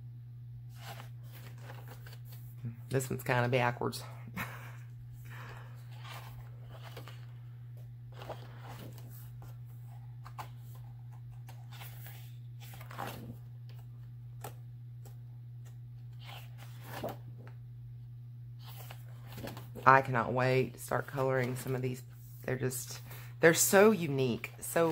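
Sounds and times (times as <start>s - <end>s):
steady low hum: 0.0s - 24.9s
paper pages rustling: 0.7s - 2.6s, 5.3s - 7.5s, 8.1s - 15.2s, 16.1s - 17.5s, 18.6s - 20.1s, 21.0s - 21.9s.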